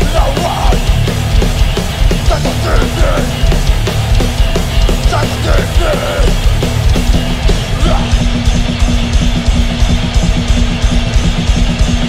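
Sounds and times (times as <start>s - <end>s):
distorted electric guitar: 0.0s - 12.0s
fast drumming: 0.0s - 12.0s
heavy band playing: 0.0s - 12.0s.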